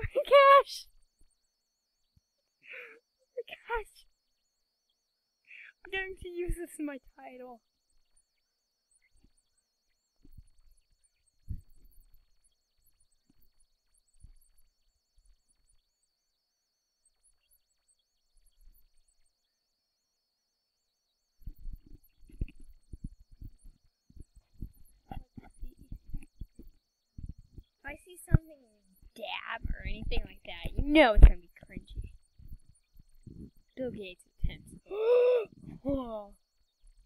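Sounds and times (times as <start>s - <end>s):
faint high-pitched whine: 0.0s - 37.0s
low thumps on microphone: 11.4s - 12.0s, 21.4s - 28.4s, 29.0s - 33.7s, 34.4s - 34.9s.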